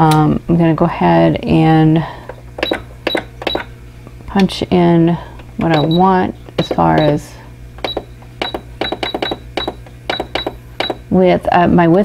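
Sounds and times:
sewing machine keypad beeps: 0:02.6 - 0:03.7, 0:05.6 - 0:07.2, 0:07.8 - 0:11.0.

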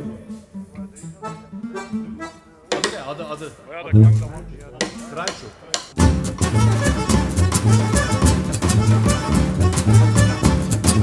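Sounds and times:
brass band playing: 0:06.0 - 0:11.0.

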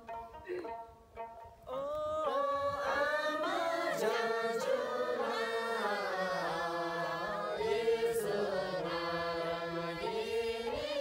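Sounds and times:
group singing chant-like folk song: 0:01.7 - 0:11.0.

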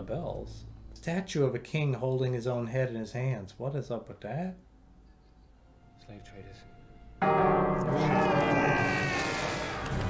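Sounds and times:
sustained ringing tone: 0:07.2 - 0:09.8.

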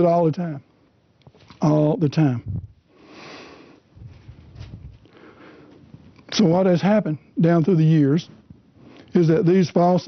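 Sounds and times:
faint movement noise: 0:00.7 - 0:09.7.

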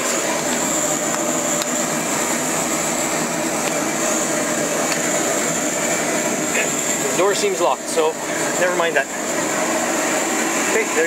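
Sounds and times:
high whine: 0:00.0 - 0:11.0
machinery noise: 0:00.0 - 0:11.0.

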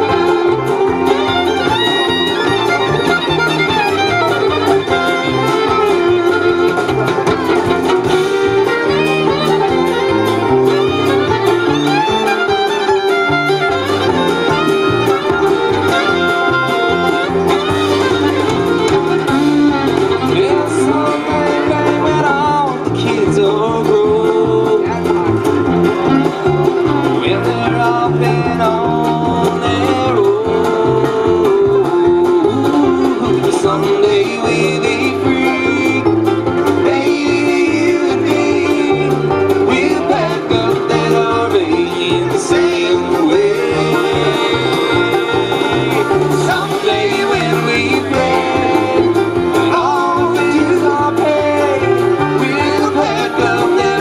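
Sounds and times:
bluegrass band playing: 0:00.0 - 0:54.0
drum kit steady beat: 0:00.0 - 0:54.0.

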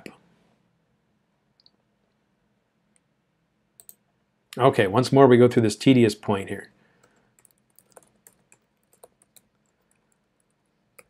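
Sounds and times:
faint computer clicks: 0:03.8 - 0:04.0, 0:07.0 - 0:11.0.

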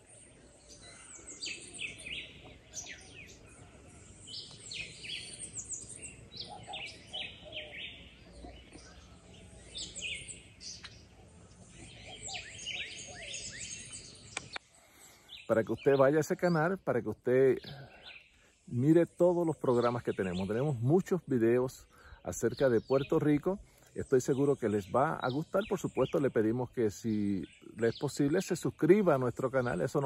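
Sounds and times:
birds chirping: 0:00.0 - 0:30.0
outdoor background noise: 0:00.0 - 0:30.0.

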